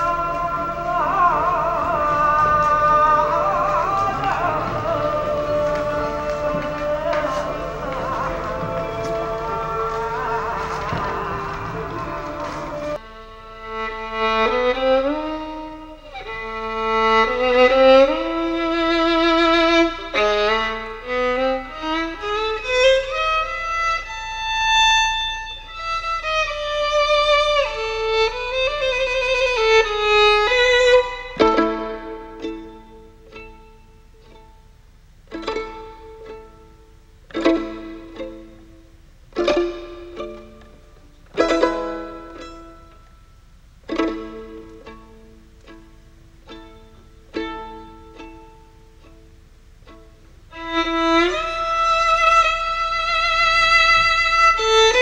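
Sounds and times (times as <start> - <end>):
bowed violin with vibrato: 0.0 - 55.0
plucked violin chords: 0.0 - 55.0.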